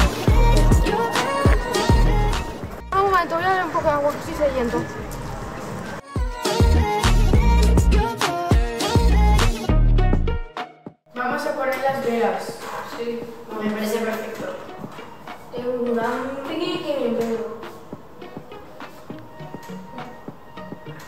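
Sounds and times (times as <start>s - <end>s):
bass-heavy music: 0.0s - 3.0s, 6.1s - 10.6s
young voices chattering: 0.0s - 5.6s.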